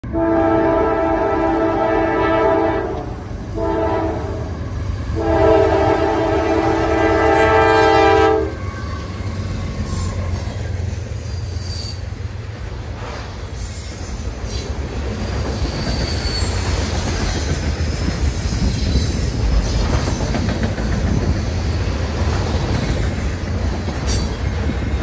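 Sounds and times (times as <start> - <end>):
locomotive horn blasts: 0.0 - 8.6
train rumbling: 0.0 - 25.0.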